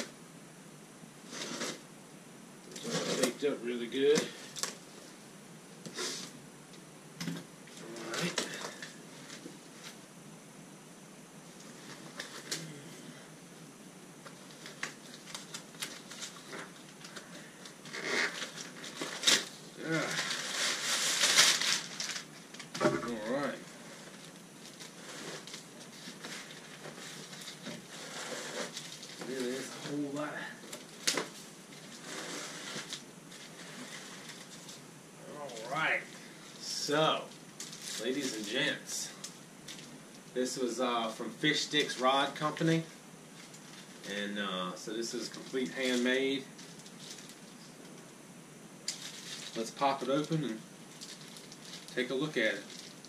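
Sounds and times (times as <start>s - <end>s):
packing tape tearing off box: 2.7s - 3.4s, 14.5s - 23.6s, 24.2s - 34.8s
cardboard scraping and crinkling: 2.8s - 3.4s, 17.8s - 34.8s.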